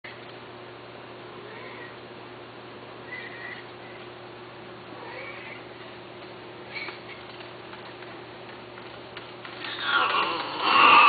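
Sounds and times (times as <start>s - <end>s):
steady low hum: 0.0s - 11.0s
cat meowing: 1.4s - 2.0s, 3.0s - 3.7s, 5.0s - 5.6s.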